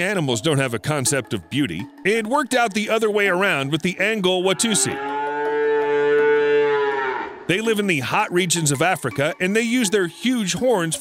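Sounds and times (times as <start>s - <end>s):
cow mooing: 4.2s - 7.5s.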